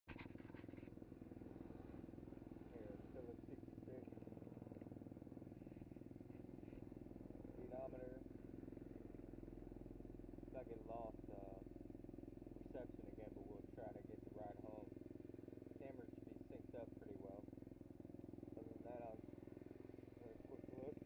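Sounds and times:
motorbike engine idling: 0.1 - 21.0.

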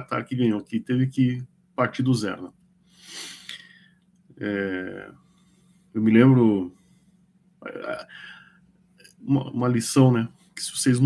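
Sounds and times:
faint breathy hiss: 2.8 - 9.2.

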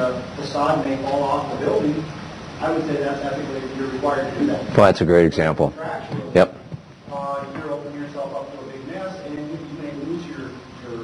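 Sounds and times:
man speaking: 0.0 - 11.0
quiet talking in a room: 0.0 - 11.0.

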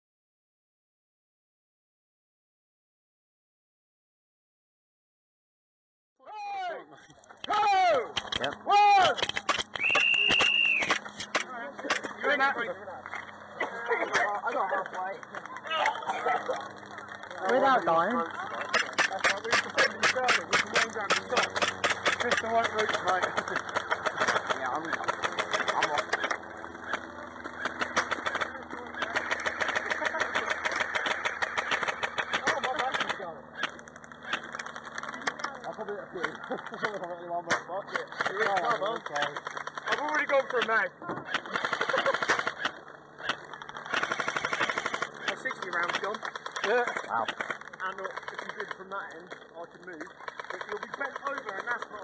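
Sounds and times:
airsoft gunshots: 9.0 - 12.2, 18.6 - 35.3, 37.5 - 48.8
airsoft gunfire cracks: 18.7 - 27.0.

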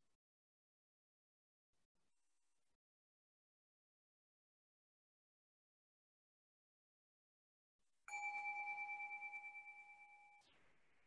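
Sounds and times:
meditation bell ringing: 8.1 - 10.4.

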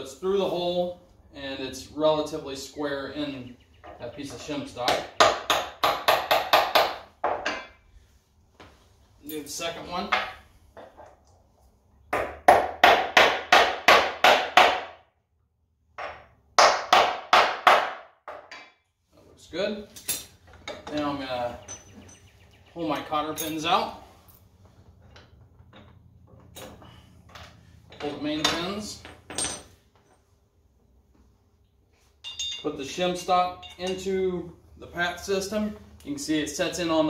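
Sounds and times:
metal pin clinking on bracket: 32.2 - 32.8, 33.6 - 34.1.

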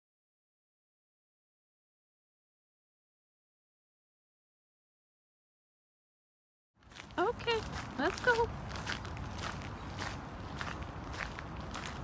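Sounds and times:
footsteps crunching on gravel: 6.8 - 12.0.

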